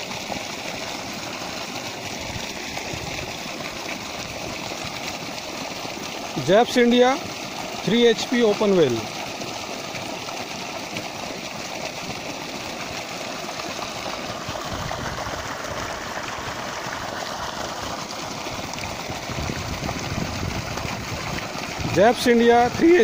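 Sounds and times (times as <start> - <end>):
water gushing from pipe: 0.0 - 23.0.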